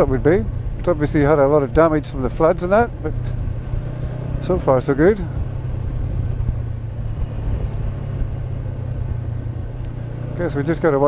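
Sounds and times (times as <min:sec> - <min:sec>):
motorcycle engine hum: 0:00.0 - 0:11.0
wind and road noise: 0:00.0 - 0:11.0.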